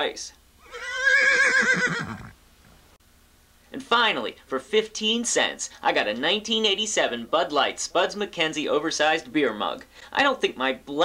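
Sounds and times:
horse whinnying: 0.6s - 2.4s.

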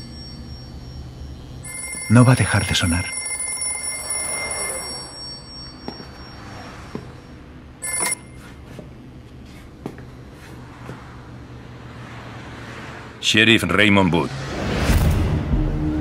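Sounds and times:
payphone bell ringing: 0.0s - 8.6s.

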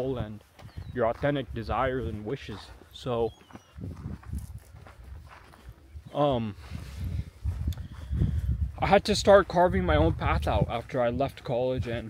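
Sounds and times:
footsteps on dirt trail: 0.0s - 12.0s.

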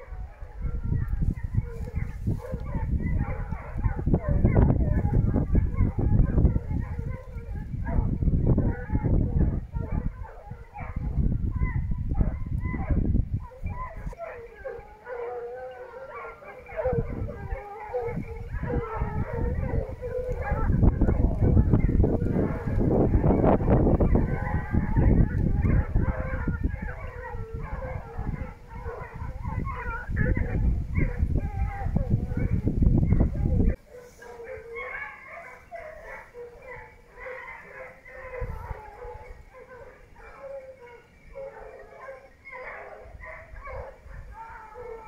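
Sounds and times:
hounds baying: 0.0s - 45.0s.

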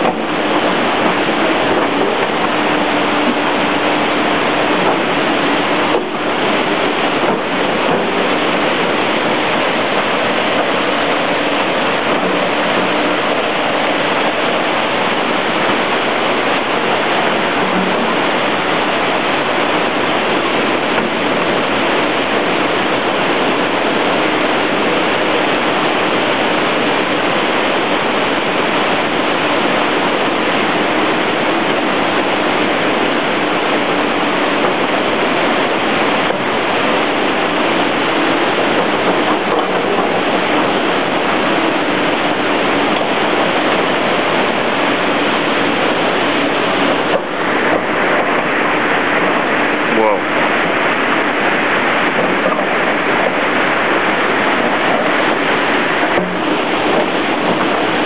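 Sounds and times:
stream water rushing: 0.0s - 58.0s.

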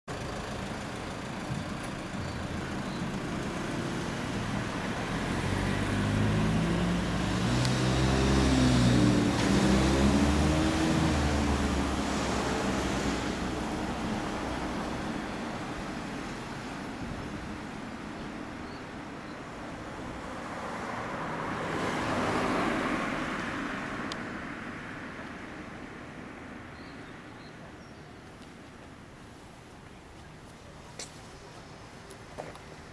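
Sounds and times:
steady traffic hum: 0.1s - 32.9s
vehicle passing by: 3.3s - 15.4s, 20.2s - 24.8s.

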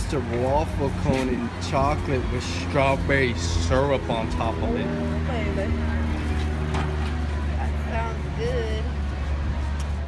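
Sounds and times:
engine humming: 0.0s - 10.0s
faint voices talking: 0.0s - 10.0s.

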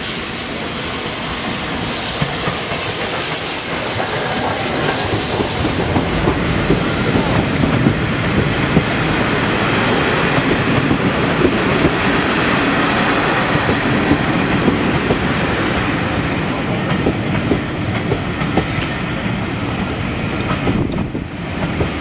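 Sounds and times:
train rumble: 0.0s - 22.0s
train wheels clattering over rail joints: 1.8s - 12.2s, 16.8s - 19.0s, 19.6s - 22.0s.

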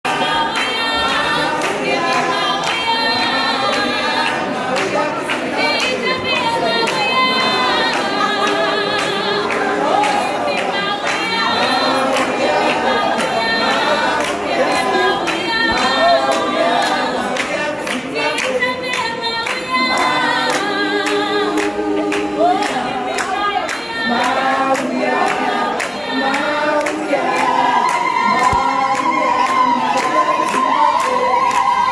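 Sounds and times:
group singing unaccompanied: 0.0s - 31.9s
hand claps: 0.0s - 31.9s.

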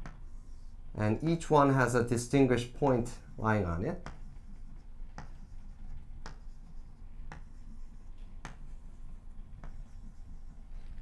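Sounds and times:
chalk tapping on blackboard: 0.0s - 0.7s, 2.8s - 10.8s.

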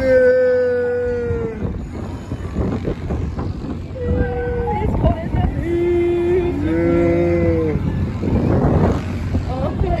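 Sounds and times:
rush of noise: 0.0s - 10.0s.

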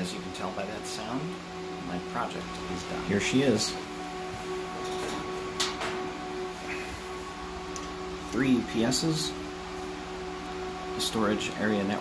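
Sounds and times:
humming tones: 0.0s - 12.0s
server cooling fans whirring: 0.0s - 12.0s.

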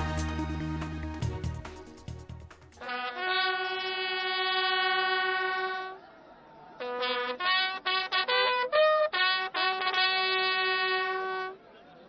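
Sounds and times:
solo brass long held note: 2.8s - 6.0s.

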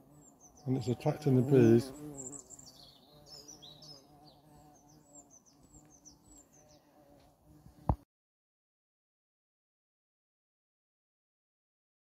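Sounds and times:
small birds chirping: 0.0s - 7.2s
bee buzzing: 0.0s - 8.1s.

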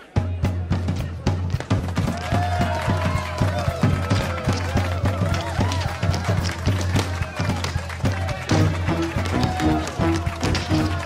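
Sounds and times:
loud instrumental music: 0.0s - 11.0s
tap shoes clicking on stage: 1.5s - 11.0s.

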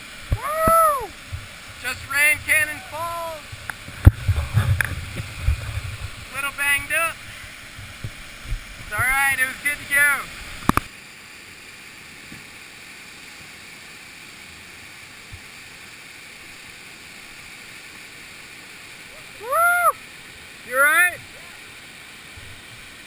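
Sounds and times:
waterfall rushing: 0.0s - 23.0s
person whooping: 0.4s - 1.1s, 2.7s - 3.4s, 19.1s - 20.0s.

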